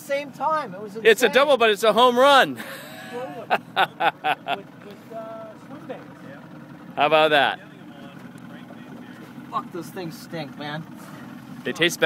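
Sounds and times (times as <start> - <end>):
boat motor humming: 0.0 - 12.0.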